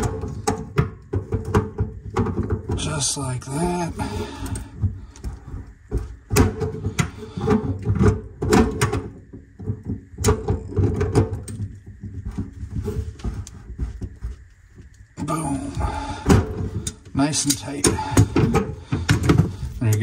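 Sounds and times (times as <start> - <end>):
low knocking and handling rumble: 0.0 - 20.0.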